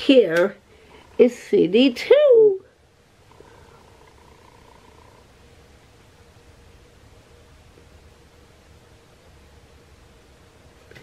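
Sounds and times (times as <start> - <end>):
thin steady hum: 0.0 - 11.0.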